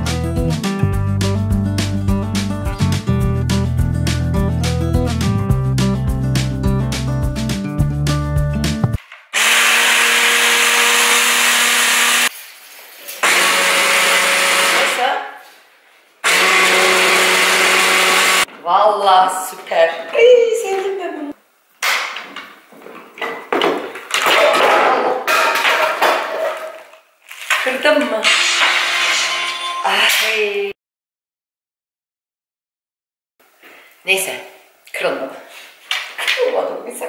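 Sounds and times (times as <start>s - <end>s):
hand blender motor: 9.4s - 12.3s, 13.2s - 15.2s, 16.2s - 18.5s
people talking: 14.9s - 15.4s, 18.6s - 21.4s, 27.6s - 28.3s, 29.9s - 30.8s, 34.1s - 35.5s, 36.2s - 37.0s.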